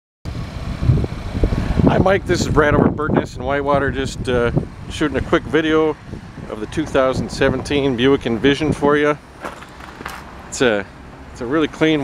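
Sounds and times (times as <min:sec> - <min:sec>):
wind buffeting microphone: 0:00.3 - 0:11.4
man speaking: 0:01.9 - 0:09.2, 0:10.5 - 0:12.0.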